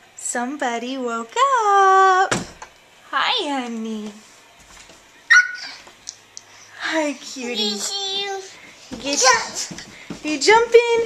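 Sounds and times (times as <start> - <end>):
toddler squealing: 5.3 - 5.8.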